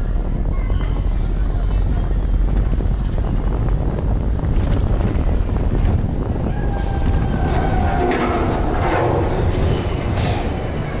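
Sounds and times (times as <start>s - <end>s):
gondola mechanical rumble: 0.0s - 11.0s.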